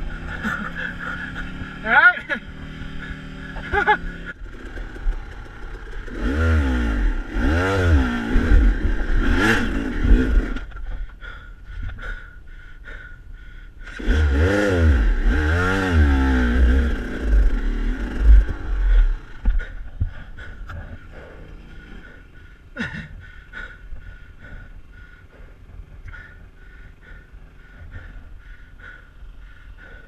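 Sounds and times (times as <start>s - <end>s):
dirt bike engine revving: 0.0s - 10.8s, 13.8s - 19.8s, 20.4s - 23.1s.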